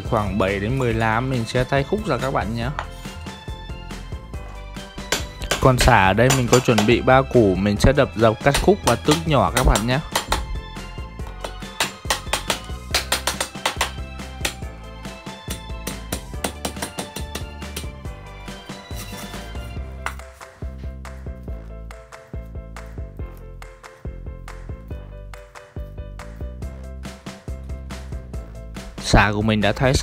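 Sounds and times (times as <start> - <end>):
background music: 0.0 - 30.0
knife chopping on wooden board: 5.0 - 7.0, 8.5 - 10.6, 11.3 - 14.6, 15.5 - 18.0.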